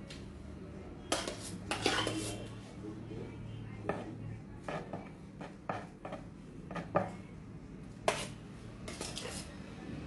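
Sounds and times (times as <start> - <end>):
spatula scraping metal pot: 1.0 - 2.5, 8.0 - 9.6.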